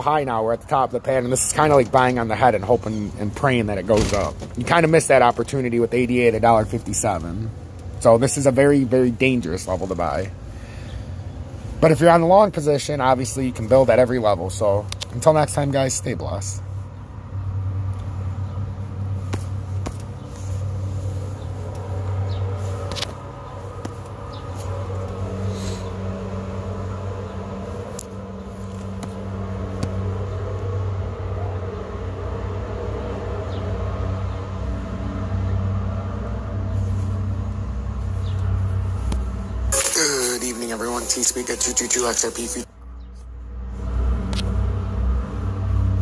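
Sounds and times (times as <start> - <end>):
steady low rumble: 16.1 - 39.8.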